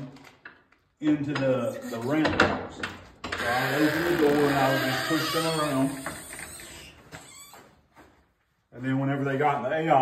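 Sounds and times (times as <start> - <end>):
wooden door rubbing: 3.4 - 7.5.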